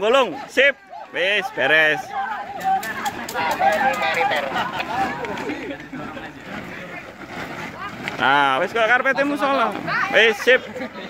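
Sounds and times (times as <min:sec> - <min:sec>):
group of people chattering: 0:00.0 - 0:11.0
light crackles: 0:02.6 - 0:09.8.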